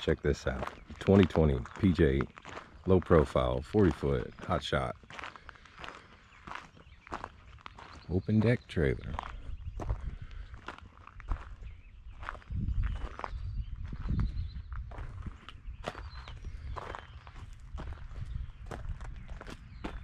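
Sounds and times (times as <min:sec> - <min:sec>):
footsteps crunching on gravel: 0:00.0 - 0:20.0.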